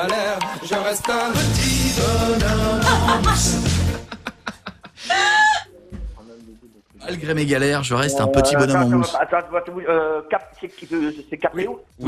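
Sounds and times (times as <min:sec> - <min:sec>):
high-pitched voiced call: 0:08.0 - 0:08.9.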